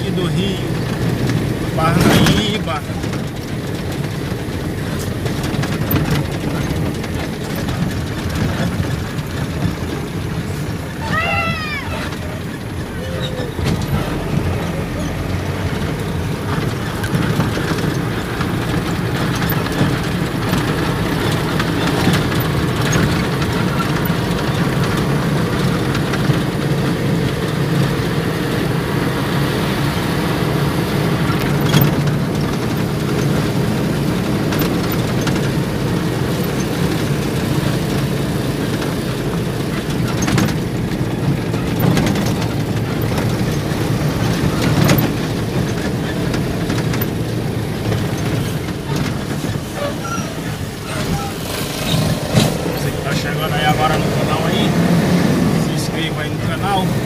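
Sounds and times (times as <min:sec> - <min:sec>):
engine and road noise inside vehicle: 0:00.0 - 0:57.0
faint clicks and rattles: 0:00.0 - 0:57.0.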